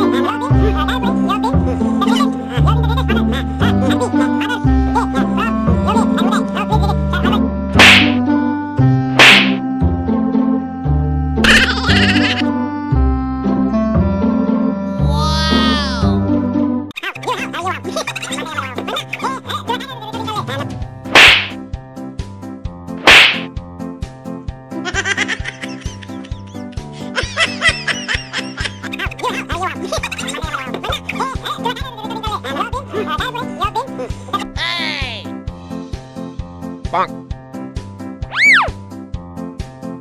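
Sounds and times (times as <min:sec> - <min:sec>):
comedy background music: 0:00.0 - 0:40.0
background music with steady beat: 0:07.4 - 0:14.7, 0:34.5 - 0:40.0
loud slaps: 0:07.8 - 0:08.2, 0:09.2 - 0:09.6, 0:21.1 - 0:21.6, 0:23.0 - 0:23.5.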